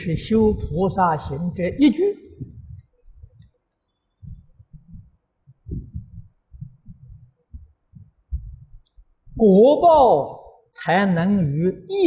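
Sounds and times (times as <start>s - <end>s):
microphone rubbing against cloth: 0.0s - 3.6s, 4.2s - 9.5s.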